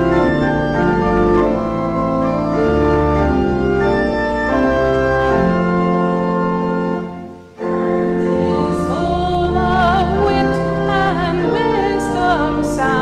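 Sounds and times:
organ playing slow chords: 0:00.0 - 0:13.0.

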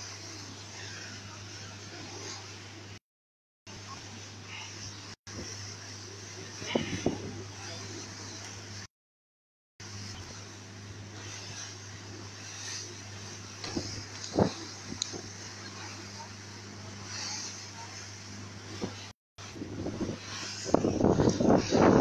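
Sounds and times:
rush of wind and water: 0:00.0 - 0:03.0, 0:03.7 - 0:08.9, 0:09.8 - 0:22.0
motorboat engine running: 0:03.7 - 0:08.9, 0:09.8 - 0:22.0.

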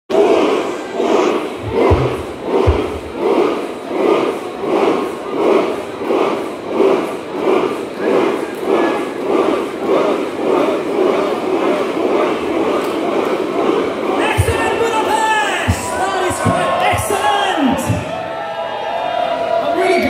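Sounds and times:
audience chanting: 0:00.1 - 0:19.3
deep thumps: 0:01.6 - 0:03.5.

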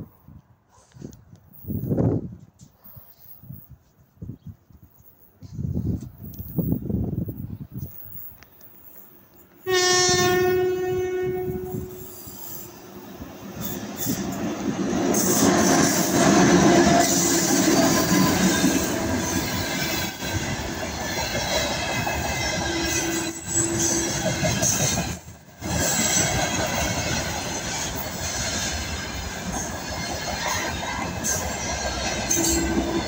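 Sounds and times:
train wheels rumbling on rails: 0:05.4 - 0:33.0
locomotive horn blast: 0:09.6 - 0:12.2.

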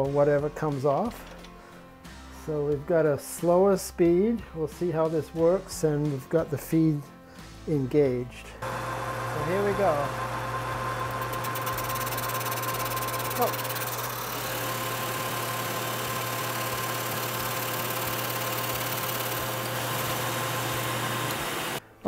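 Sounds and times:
metal lathe motor hum: 0:08.6 - 0:21.8
shop vacuum running: 0:08.6 - 0:21.8.

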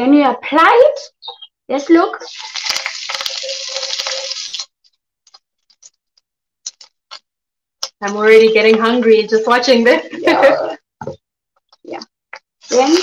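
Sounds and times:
vegetables sizzling in hot oil: 0:02.2 - 0:04.7, 0:12.6 - 0:13.0.

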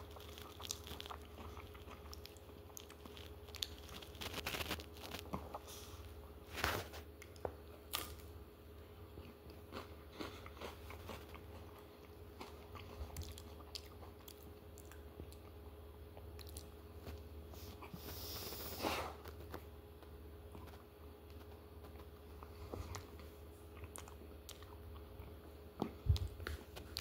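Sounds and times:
person crunching ice cream cone: 0:00.0 - 0:05.7.

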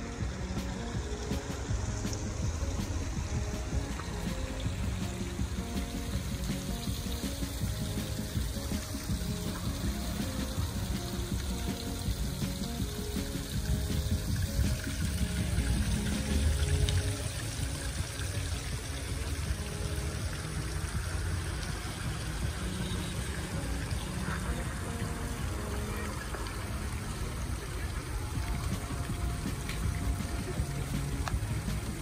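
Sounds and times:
fountain water splashing: 0:00.0 - 0:32.0.

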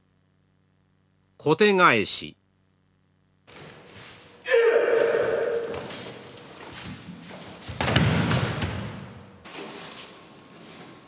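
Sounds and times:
loud drawn-out shout: 0:04.4 - 0:06.0.

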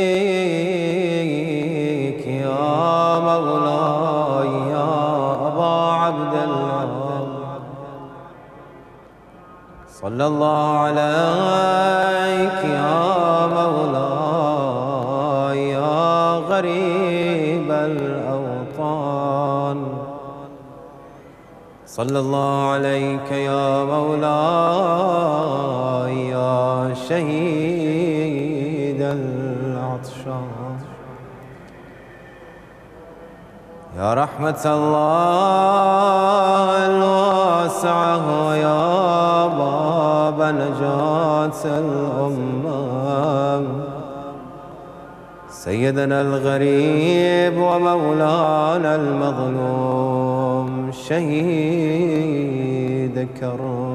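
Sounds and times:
man chanting a slow lament: 0:00.0 - 0:53.9.

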